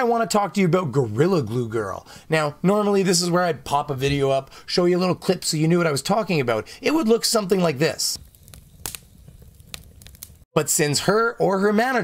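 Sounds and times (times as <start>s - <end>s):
fire burning: 5.5s - 10.5s.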